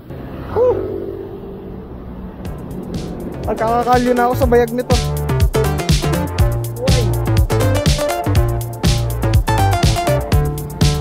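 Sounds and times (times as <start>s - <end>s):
pitched tone: 0.0s - 8.6s
road traffic noise: 0.0s - 11.0s.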